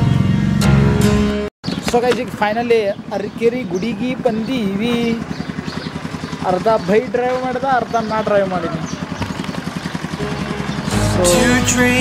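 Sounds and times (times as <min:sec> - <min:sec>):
motorcycle engine idling: 0:01.6 - 0:12.0.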